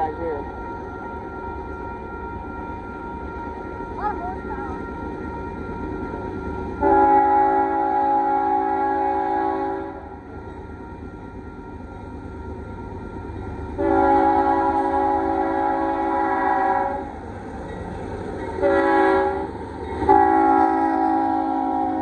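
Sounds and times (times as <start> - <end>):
train rumble: 0.0 - 22.0
locomotive air horn blasts: 6.8 - 10.1, 13.8 - 17.1, 18.6 - 22.0.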